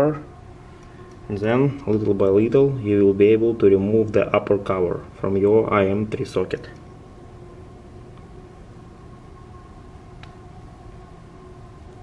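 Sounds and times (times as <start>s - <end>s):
faint steady tones: 0.0s - 12.0s
low background hum: 0.0s - 12.0s.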